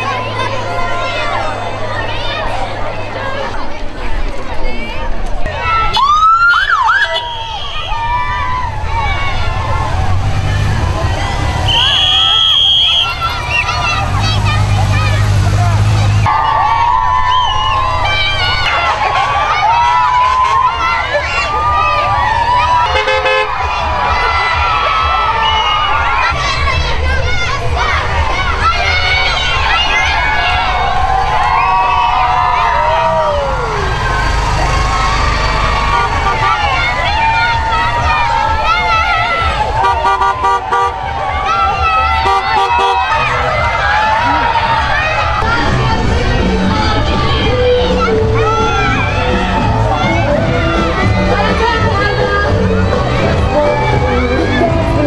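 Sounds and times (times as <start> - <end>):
children cheering and shouting: 0.0 - 55.0
motorcycle engine humming: 0.0 - 55.0
car horn tooting: 11.6 - 14.5, 22.9 - 23.5, 35.7 - 37.1, 39.8 - 41.0, 42.1 - 43.2.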